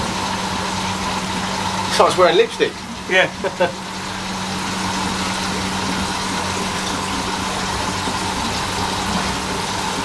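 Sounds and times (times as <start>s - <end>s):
aquarium pumps humming: 0.0s - 10.0s.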